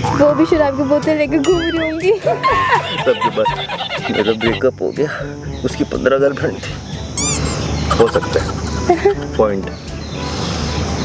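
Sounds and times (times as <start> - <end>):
warbling bird-like call: 7.2 - 8.6.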